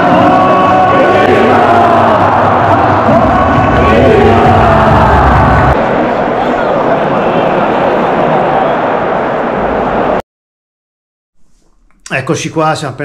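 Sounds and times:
crowd singing along: 0.0s - 7.8s
stadium music: 0.0s - 10.2s
low rumble: 2.8s - 5.8s.

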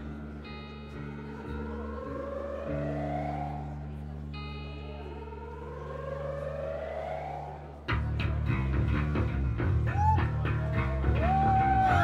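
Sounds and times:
sustained low notes: 0.0s - 11.0s.

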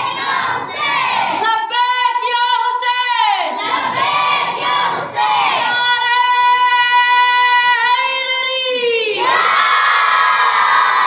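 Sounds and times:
high voice singing a chant: 0.0s - 9.4s.

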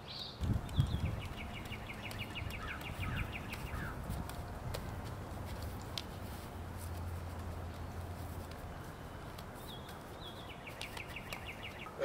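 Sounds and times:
low steady hum: 0.4s - 12.0s
bird trilling: 0.7s - 4.1s.

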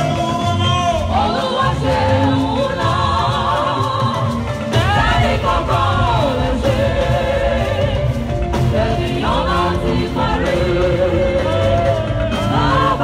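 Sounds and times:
bass-heavy band: 0.0s - 13.0s
women's choir singing: 1.0s - 13.0s.

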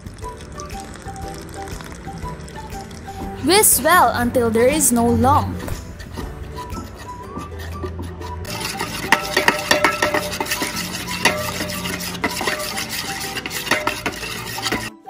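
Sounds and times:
metal spoon stirring in a bowl: 5.8s - 15.0s.

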